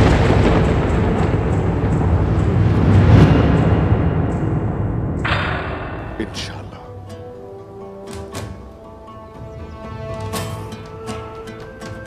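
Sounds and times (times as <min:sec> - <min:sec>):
boom: 0:00.0 - 0:06.4
cinematic low rumble: 0:00.0 - 0:07.0.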